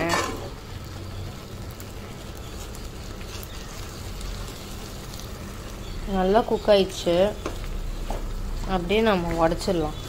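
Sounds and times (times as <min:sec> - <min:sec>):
sauce sizzling in a pan: 0:00.0 - 0:10.0.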